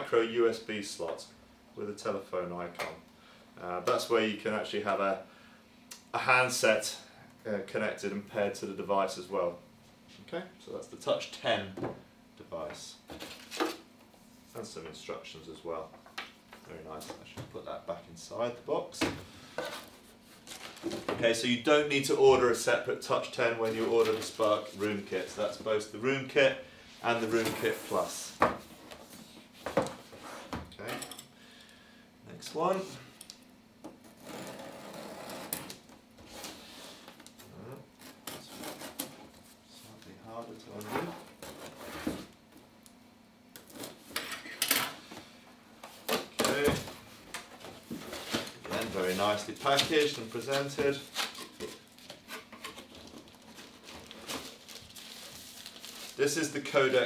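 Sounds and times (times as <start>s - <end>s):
packaging rustling: 47.5s - 56.2s.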